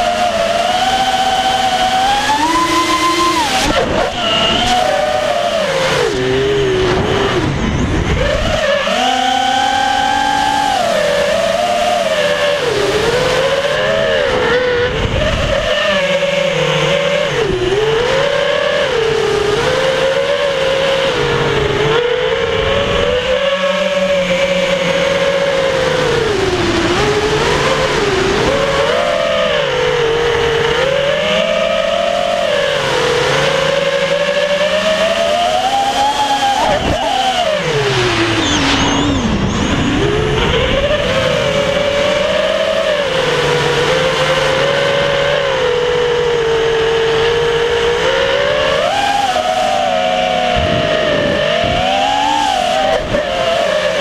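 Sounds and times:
quadcopter motors whining: 0.0s - 54.0s.

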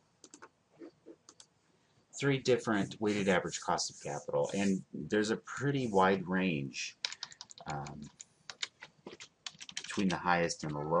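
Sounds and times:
computer keyboard keys clicking: 0.2s - 0.5s, 7.0s - 10.8s.

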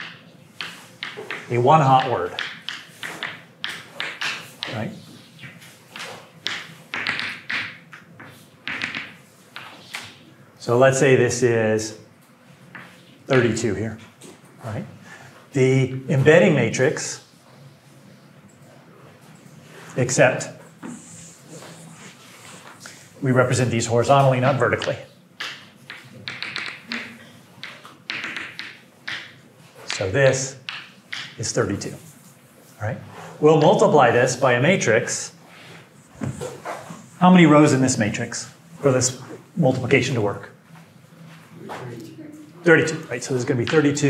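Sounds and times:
chalk tapping and scratching: 0.0s - 10.2s, 24.8s - 30.0s.

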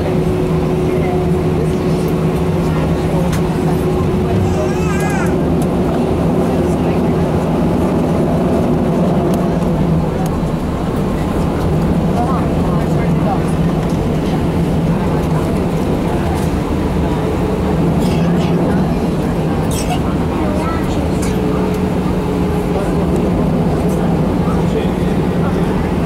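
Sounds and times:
jet engines humming in cabin: 0.0s - 26.0s.

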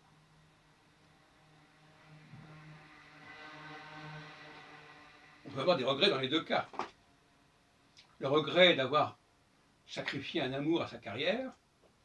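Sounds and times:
steady low hum: 0.0s - 11.5s
faint multi-tone humming: 0.0s - 12.0s.

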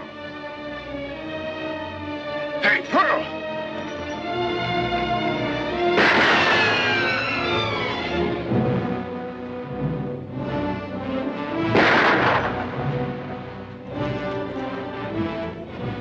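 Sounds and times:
dramatic orchestral music: 0.0s - 16.0s.

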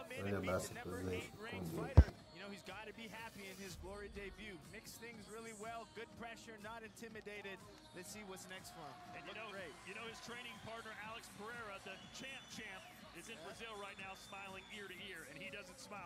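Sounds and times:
faint music: 0.0s - 16.0s.

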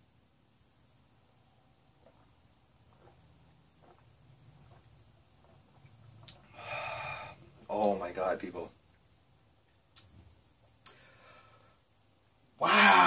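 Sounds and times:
sipping beer: 1.9s - 7.7s
loud breathy exhale: 6.5s - 7.4s.

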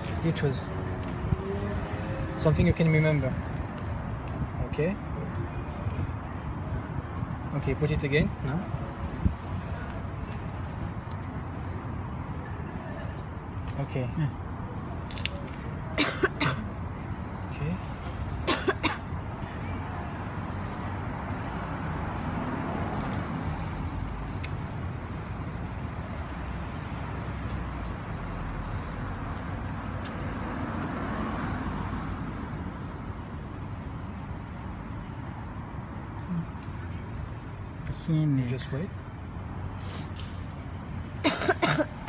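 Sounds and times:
city road traffic: 0.0s - 42.0s.

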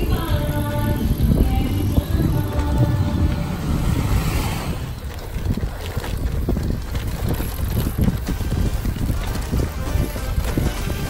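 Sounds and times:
tyres rumbling on cobblestones: 0.0s - 11.0s
wind buffeting microphone: 0.0s - 11.0s.

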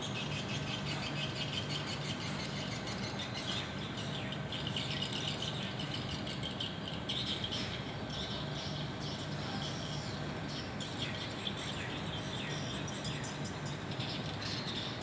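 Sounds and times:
low outdoor hum: 0.0s - 15.0s
small birds chirping: 0.0s - 15.0s.

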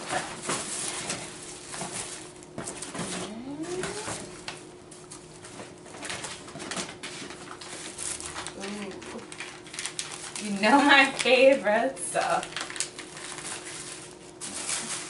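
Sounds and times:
gift bag rustling and crinkling: 0.0s - 4.4s, 5.1s - 15.0s.

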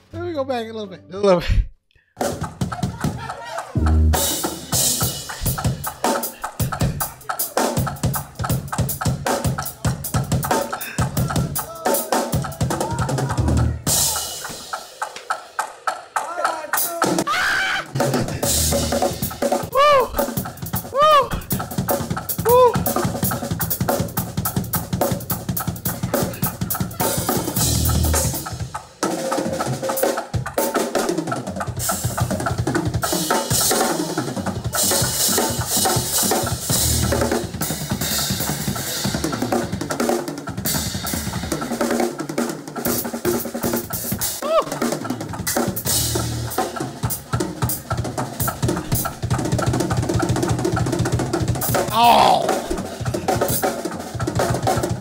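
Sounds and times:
drum kits playing fills: 2.2s - 55.0s.

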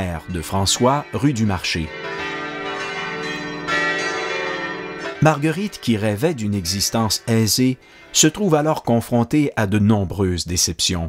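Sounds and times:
church bells ringing: 0.0s - 8.8s.

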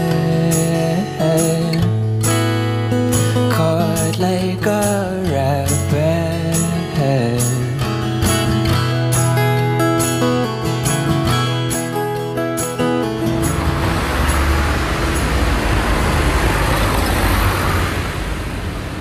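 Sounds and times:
low rumbling background noise: 13.3s - 19.0s.

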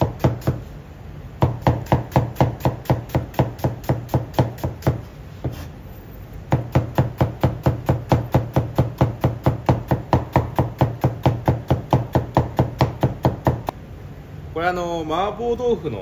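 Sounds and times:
cleaver chopping on cutting board: 0.0s - 0.6s, 1.4s - 5.6s, 6.5s - 13.6s.

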